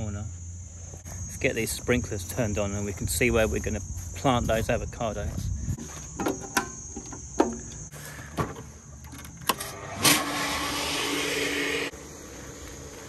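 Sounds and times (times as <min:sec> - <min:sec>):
electric pump humming and hissing: 0:09.3 - 0:13.0.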